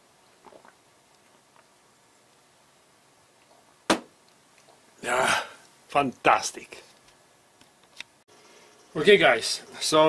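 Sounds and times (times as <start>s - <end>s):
person gulping a drink: 0.4s - 1.7s.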